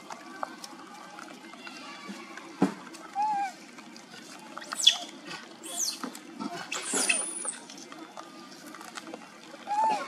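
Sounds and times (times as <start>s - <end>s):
macaque squealing: 4.6s - 6.1s, 6.7s - 7.5s.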